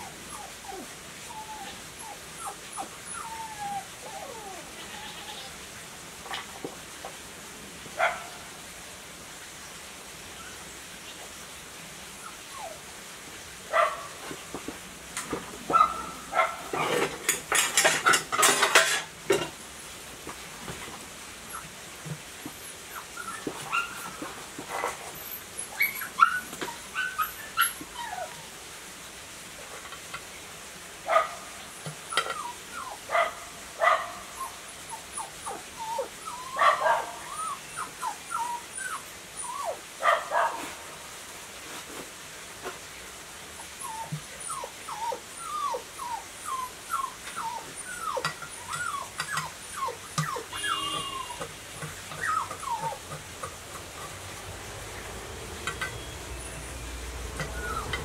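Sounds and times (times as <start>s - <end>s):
small dog whimpering and yipping: 0.0s - 5.6s, 12.2s - 12.8s, 21.5s - 21.8s, 22.4s - 28.5s, 31.8s - 39.8s, 43.6s - 53.5s, 57.4s - 58.0s.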